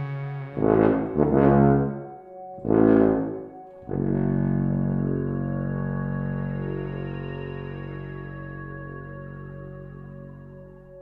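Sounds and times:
tuba playing low notes: 0:00.0 - 0:11.0.

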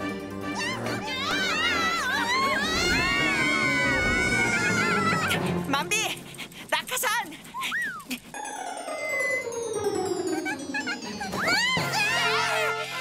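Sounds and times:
cartoon high-pitched cries and whines: 0:00.6 - 0:05.4, 0:10.8 - 0:13.0.

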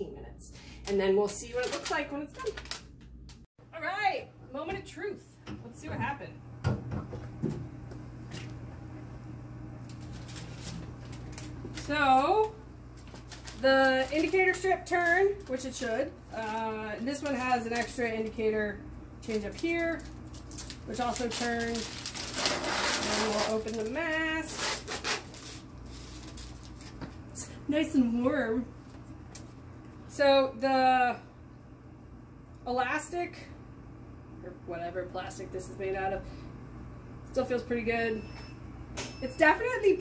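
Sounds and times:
steady low hum: 0:00.0 - 0:40.0
plastic pouch crinkling: 0:13.0 - 0:16.6, 0:19.4 - 0:27.0
pouch peeled open tearing: 0:20.4 - 0:23.8.

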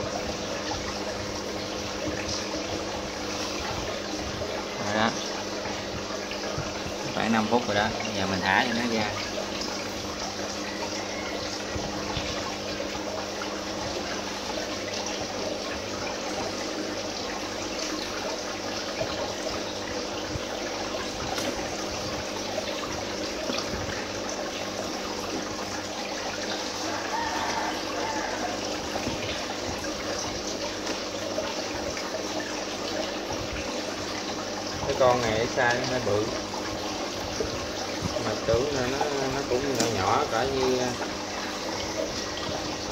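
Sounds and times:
aquarium pump hum: 0:00.0 - 0:42.9
water splashing and trickling: 0:00.0 - 0:42.9.

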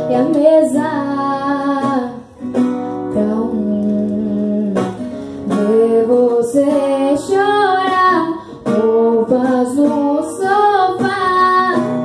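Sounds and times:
strummed acoustic guitar: 0:00.0 - 0:12.0
woman singing into a microphone: 0:00.0 - 0:12.0.

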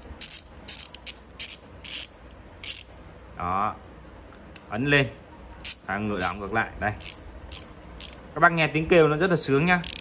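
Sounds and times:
ratcheting screwdriver clicking: 0:00.0 - 0:02.9, 0:07.0 - 0:08.2.

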